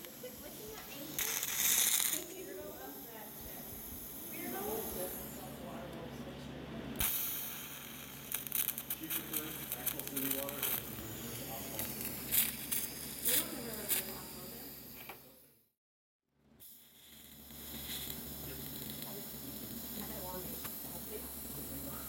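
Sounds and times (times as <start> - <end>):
welding arc hissing and crackling: 0.0 - 5.6, 7.0 - 15.4, 16.6 - 22.0
steady electrical hum: 0.0 - 15.6, 16.5 - 22.0.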